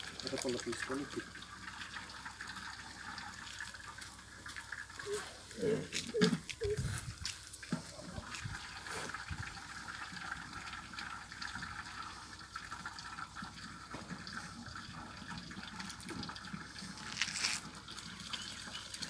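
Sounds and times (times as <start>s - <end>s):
liquid pouring into metal buckets: 0.0s - 19.0s.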